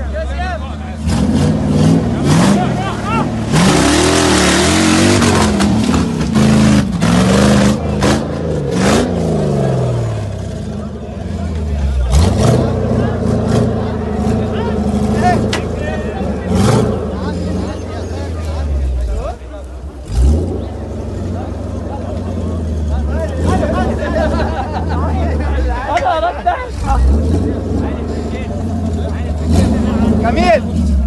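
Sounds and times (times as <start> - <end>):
off-road vehicle engine revving: 0.0 - 31.0.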